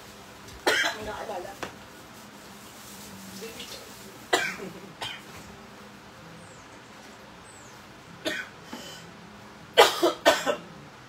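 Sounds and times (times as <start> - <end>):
person coughing: 4.3 - 5.2, 9.8 - 10.6.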